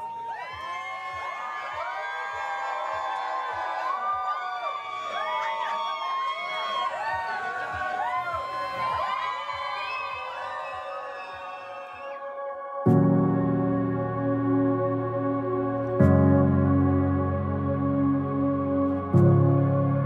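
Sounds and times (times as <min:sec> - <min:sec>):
crowd cheering and whooping: 0:00.0 - 0:12.6.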